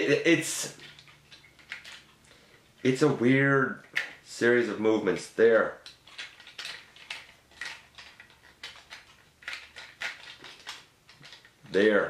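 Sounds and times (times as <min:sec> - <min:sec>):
plastic toy parts clicking: 0:00.7 - 0:02.2, 0:05.8 - 0:11.6.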